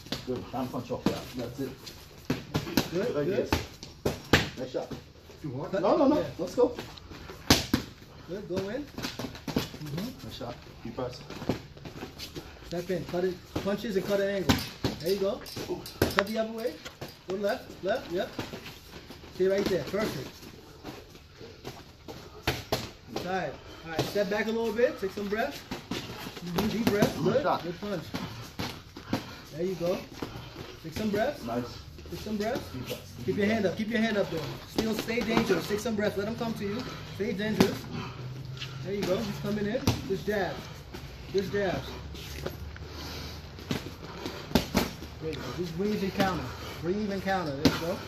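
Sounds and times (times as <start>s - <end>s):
boxing gloves smacking: 7.3s - 10.1s, 21.7s - 31.6s, 33.3s - 38.2s, 43.4s - 46.5s.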